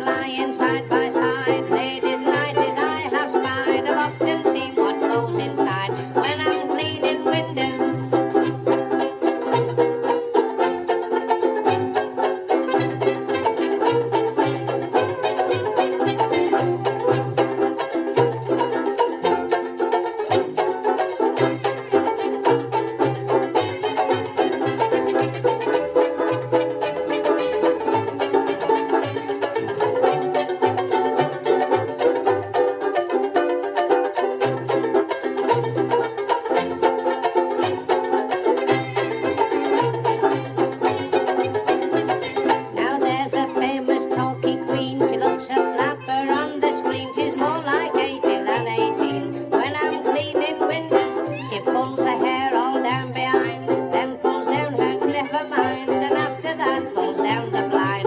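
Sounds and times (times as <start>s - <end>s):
banjo ukulele strumming: 0.0s - 58.0s.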